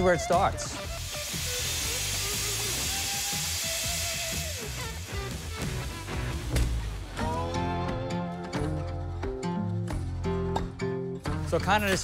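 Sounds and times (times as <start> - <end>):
background music: 0.0 - 12.0
steam hissing: 0.8 - 7.2.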